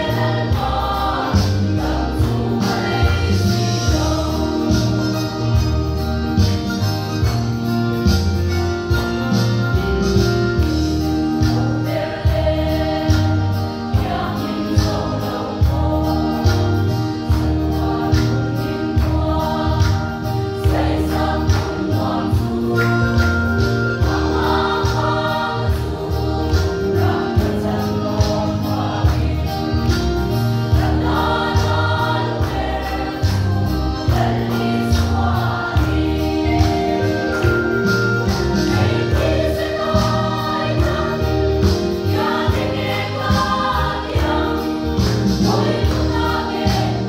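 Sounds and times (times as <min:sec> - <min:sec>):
women's choir singing: 0:00.0 - 0:06.0, 0:11.3 - 0:47.0.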